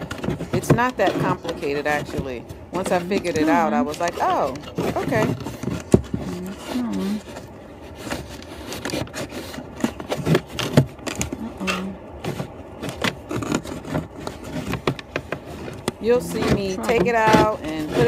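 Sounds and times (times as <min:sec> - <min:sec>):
plastic scraping and clicking: 0:00.0 - 0:18.0.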